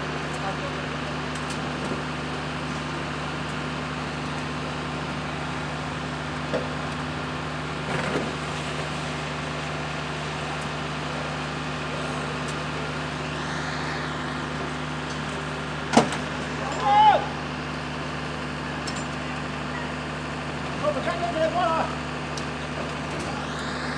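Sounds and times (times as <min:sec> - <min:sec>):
engine running: 0:00.0 - 0:23.9
person shouting: 0:16.6 - 0:17.4.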